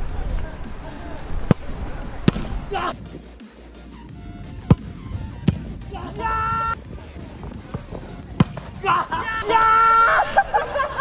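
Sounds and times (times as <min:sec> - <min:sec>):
football kicked hard: 0:01.4 - 0:02.7, 0:04.6 - 0:05.8, 0:06.9 - 0:08.8.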